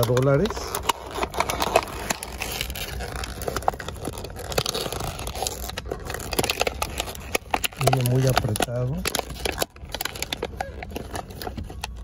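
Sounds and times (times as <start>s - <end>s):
cardboard and paper crackling: 0.0s - 12.0s.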